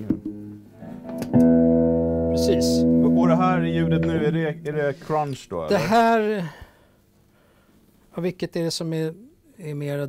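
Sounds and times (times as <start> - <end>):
electric guitar notes and chord: 0.1 - 4.9.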